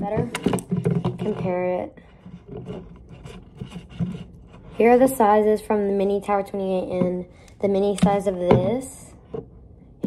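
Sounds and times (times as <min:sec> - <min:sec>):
plastic spray bottles handled: 0:00.0 - 0:04.3.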